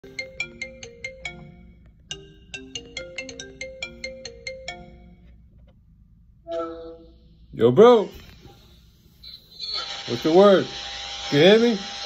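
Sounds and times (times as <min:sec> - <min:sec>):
phone ringtone melody: 0:00.0 - 0:05.3.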